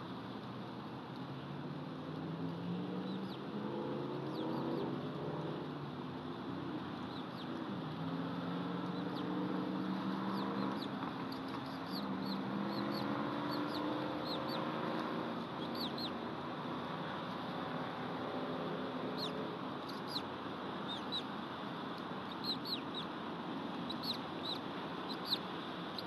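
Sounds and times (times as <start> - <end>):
bird peeps: 10.3 - 14.6, 15.6 - 16.2, 19.2 - 21.3, 22.2 - 23.1, 23.8 - 26.0.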